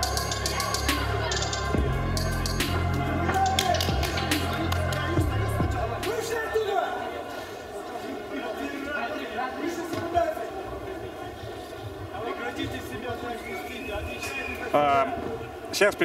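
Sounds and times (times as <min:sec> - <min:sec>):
indistinct voices echoing in hall: 0:00.0 - 0:16.0.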